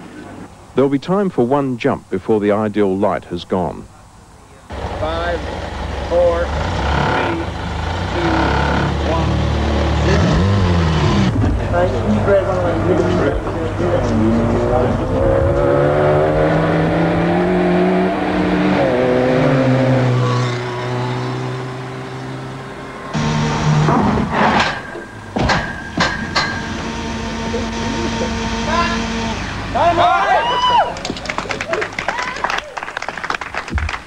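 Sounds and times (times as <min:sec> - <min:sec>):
voices: 0:00.0 - 0:10.6, 0:11.3 - 0:15.7, 0:27.2 - 0:32.8
car engine revving: 0:04.7 - 0:25.4
loud thuds: 0:23.2 - 0:26.7.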